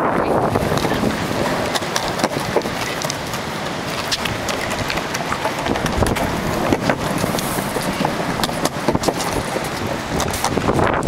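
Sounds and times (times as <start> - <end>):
skateboard wheels rolling on concrete: 0.0 - 11.0
wind on microphone: 0.0 - 11.0.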